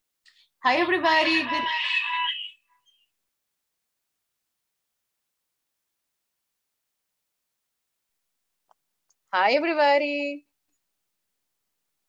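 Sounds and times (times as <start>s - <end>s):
person speaking on video call: 0.6s - 2.5s, 9.2s - 10.5s.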